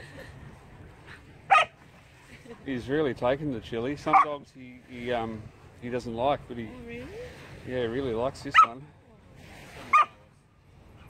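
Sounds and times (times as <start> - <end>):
dog yipping: 1.5 - 1.7, 9.9 - 10.1.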